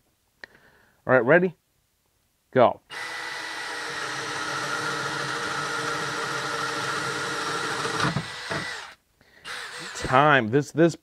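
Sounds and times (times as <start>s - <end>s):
cordless drill boring through wood: 2.9s - 10.3s.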